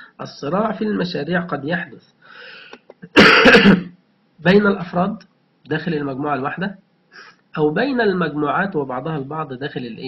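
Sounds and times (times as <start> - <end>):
faint breath in: 2.2 - 2.9, 7.1 - 7.4
man coughing: 3.0 - 3.9.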